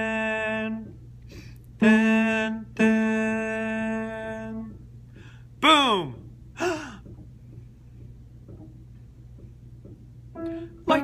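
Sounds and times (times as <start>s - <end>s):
man singing solo tenor: 0.0s - 1.0s, 1.8s - 4.8s, 10.8s - 11.0s.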